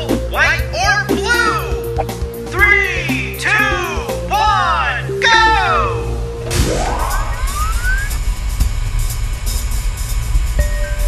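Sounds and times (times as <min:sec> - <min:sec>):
upbeat game music with heavy bass: 0:00.0 - 0:11.0
rising sweep sound effect: 0:06.1 - 0:09.3.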